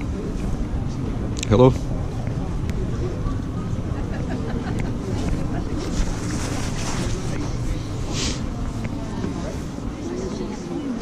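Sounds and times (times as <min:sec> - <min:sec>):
faint chatter of passers-by: 0:00.0 - 0:11.0.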